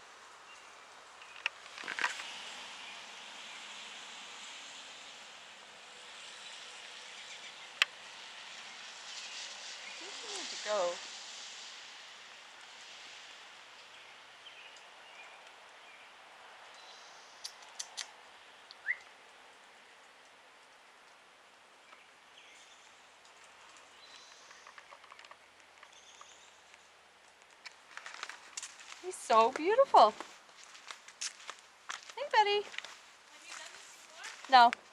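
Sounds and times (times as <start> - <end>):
sharp clicks: 17.4 - 18.1
distant bird chirps: 18.7 - 19.2, 23.6 - 26.8
rustling: 21.9 - 34.9.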